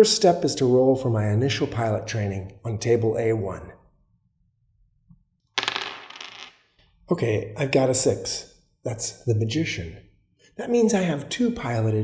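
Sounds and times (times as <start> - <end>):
dice rattling: 5.6 - 6.6.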